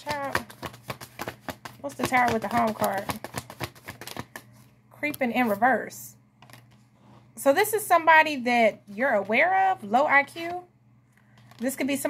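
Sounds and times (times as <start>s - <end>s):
cards shuffled by hand: 0.0s - 4.7s.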